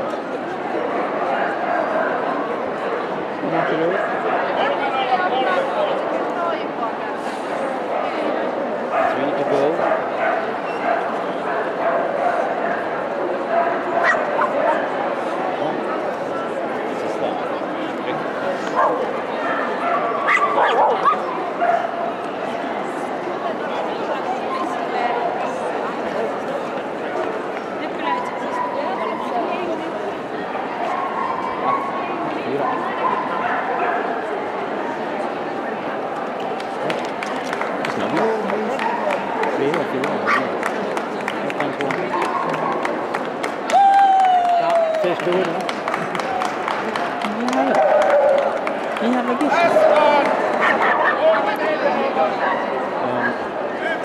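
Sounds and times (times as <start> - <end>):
crowd voices in a hall: 0.0 - 54.0
people clapping: 36.3 - 51.2.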